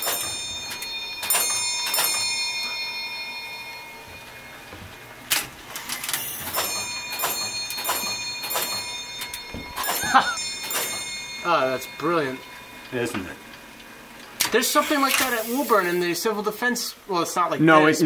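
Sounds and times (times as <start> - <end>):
clockwork clicking: 0.0 - 4.5, 5.3 - 16.1
bell strokes ringing: 0.0 - 16.1.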